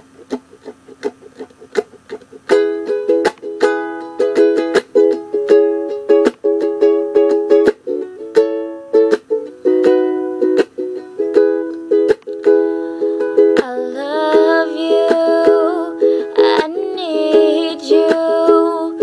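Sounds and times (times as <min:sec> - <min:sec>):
ukulele strumming chords: 0:00.0 - 0:19.0
girl singing: 0:12.5 - 0:19.0.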